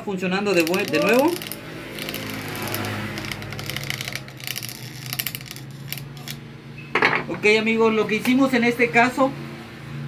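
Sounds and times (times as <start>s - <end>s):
electric fan motor humming: 0.0s - 6.8s.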